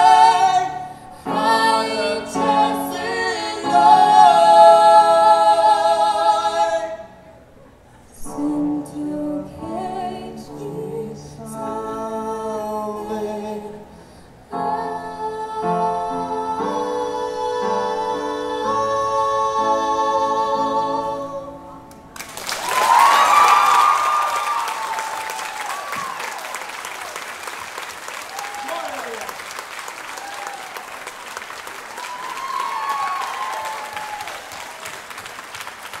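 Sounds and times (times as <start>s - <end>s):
man and woman singing: 0.0s - 7.1s, 8.2s - 21.5s
audience applause and cheers: 22.2s - 36.0s.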